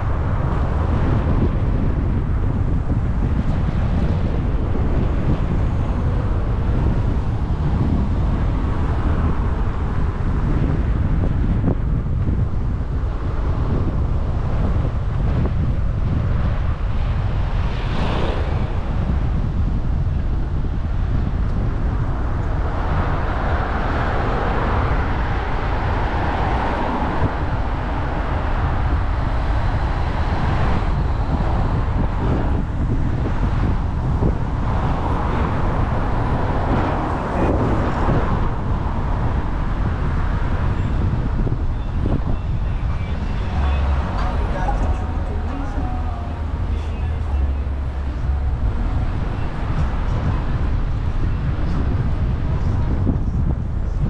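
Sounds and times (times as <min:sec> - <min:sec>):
passing cars: 0:00.0 - 0:54.0
wind rumbling over microphone: 0:00.0 - 0:54.0.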